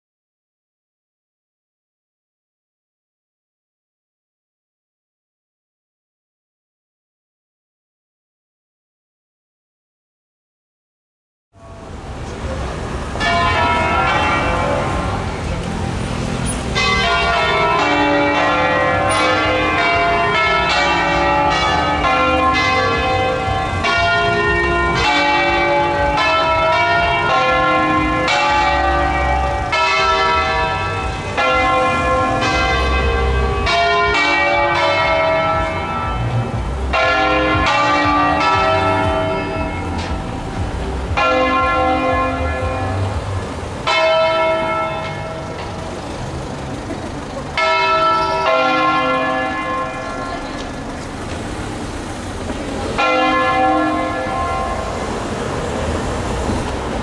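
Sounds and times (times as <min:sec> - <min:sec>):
church bells ringing: 0:11.6 - 0:57.0.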